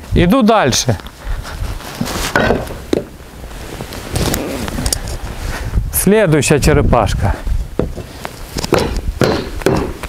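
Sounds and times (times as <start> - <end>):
knocks of wood and metal: 2.3 - 3.1, 7.8 - 10.0.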